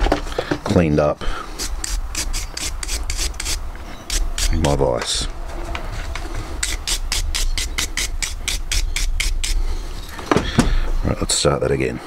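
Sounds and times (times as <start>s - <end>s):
file rasping on metal: 1.5s - 4.8s, 6.6s - 9.6s.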